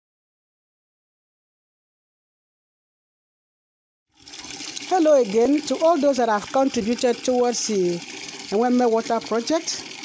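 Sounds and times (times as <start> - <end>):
tap running into plastic bucket: 4.2 - 10.0.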